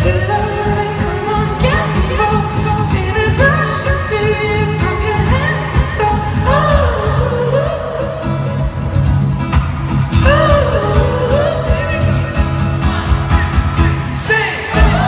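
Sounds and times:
man singing live: 0.0s - 9.3s, 9.9s - 15.0s
amplified acoustic guitar: 0.0s - 15.0s.

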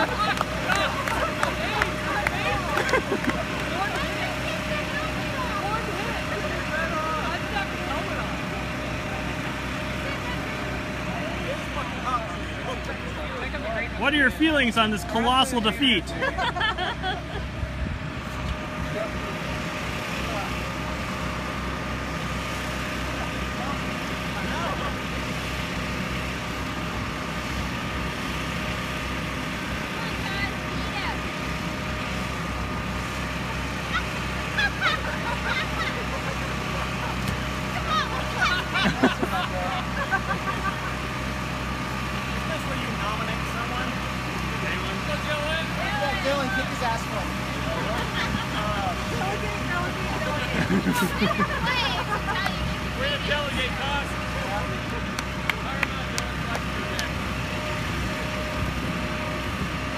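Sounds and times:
electric air blower humming: 16.7s - 59.9s.

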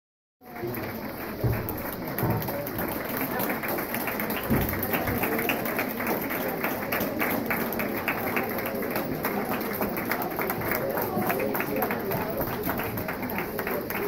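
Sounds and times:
crowd chatter: 0.4s - 14.0s
spectators clapping: 0.4s - 14.0s.

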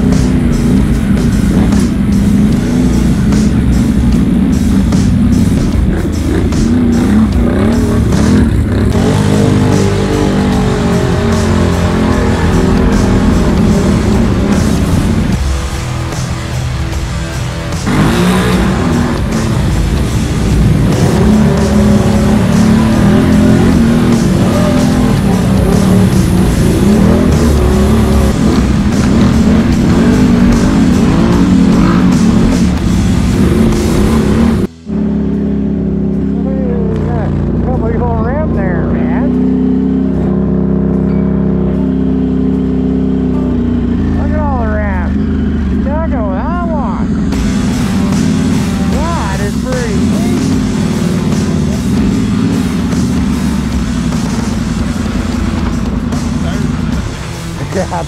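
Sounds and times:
engine running hard: 0.0s - 58.0s.

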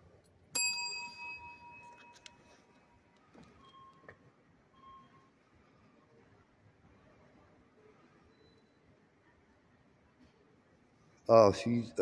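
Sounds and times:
service bell ringing: 0.6s - 2.5s.

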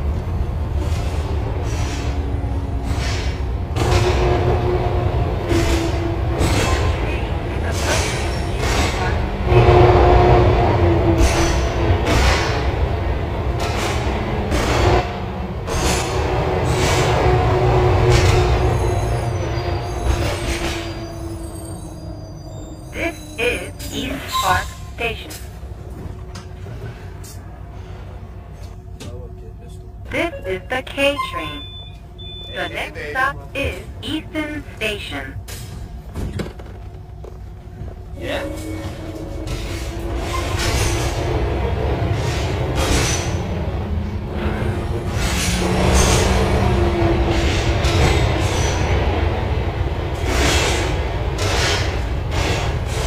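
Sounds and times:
tram running rumble: 0.0s - 53.0s
bus doors closing with clunk: 5.4s - 9.4s, 35.3s - 49.2s.

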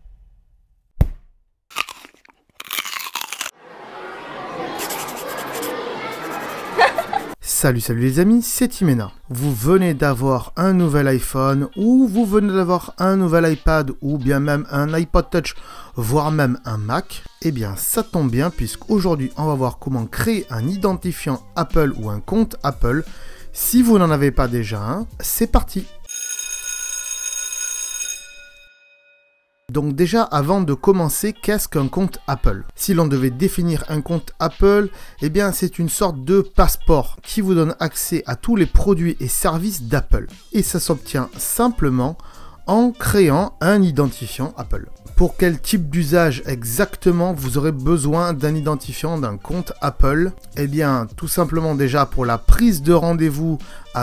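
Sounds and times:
biting crisp apple crunch: 1.7s - 3.6s
crunching chewing: 1.7s - 3.6s
bell-like electronic chime: 28.0s - 29.7s.

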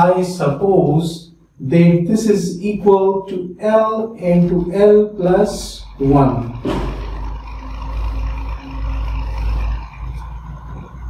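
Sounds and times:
faint hum: 0.0s - 11.0s
passing vehicle engine rumble: 4.2s - 11.0s.

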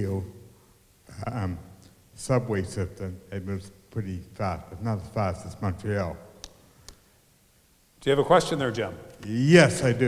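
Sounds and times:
man's voice: 8.0s - 10.0s.

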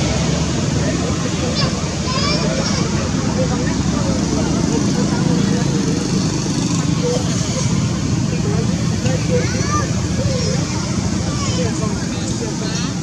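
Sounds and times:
murmur of voices: 0.0s - 13.0s.

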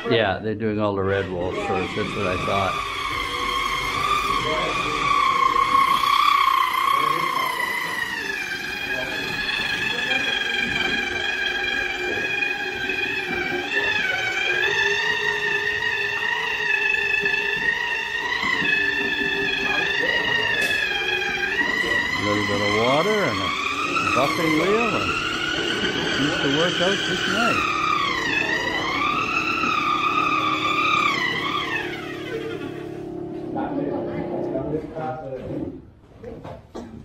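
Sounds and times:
electric buffing wheel whining: 1.1s - 34.0s.

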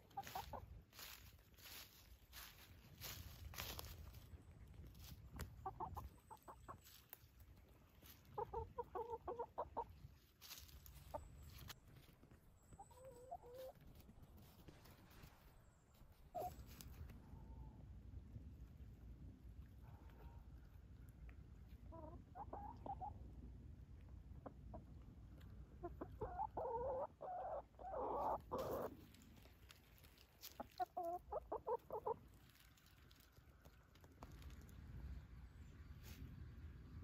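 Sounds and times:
hen clucking: 0.0s - 3.9s, 5.4s - 7.1s, 7.9s - 11.8s, 12.6s - 14.1s, 16.2s - 17.7s, 21.6s - 23.4s, 24.2s - 29.1s, 30.1s - 33.2s
dry leaves crackling: 0.0s - 8.4s, 10.2s - 17.1s, 28.5s - 35.0s.

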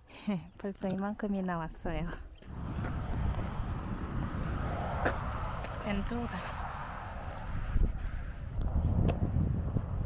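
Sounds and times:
wind buffeting microphone: 1.5s - 10.0s.

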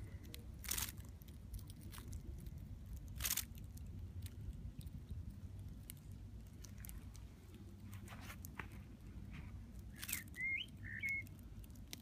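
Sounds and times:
bird chirping: 9.9s - 11.4s.

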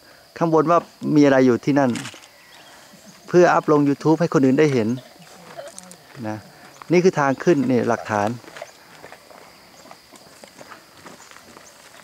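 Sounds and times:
footsteps on gravel: 1.9s - 12.0s
narrator speaking: 3.2s - 8.4s.

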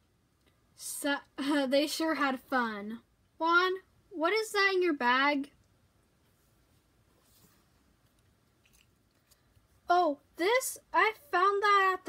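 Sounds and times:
faint rustles and clicks: 6.2s - 9.9s.

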